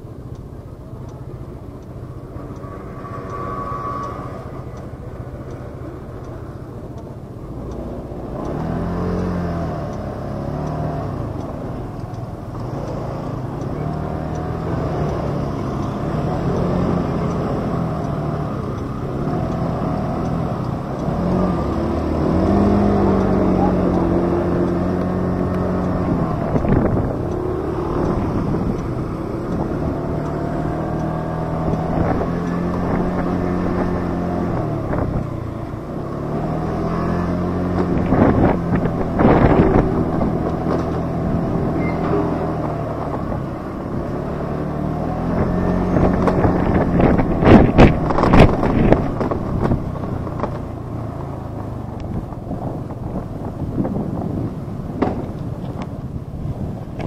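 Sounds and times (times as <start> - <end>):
motor vehicle engine running: 0.0 - 57.0.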